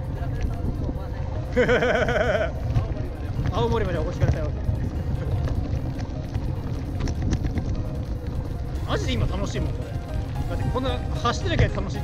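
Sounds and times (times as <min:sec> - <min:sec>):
wind buffeting microphone: 0:00.0 - 0:12.0
bicycle tyres crunching on gravel: 0:01.6 - 0:12.0.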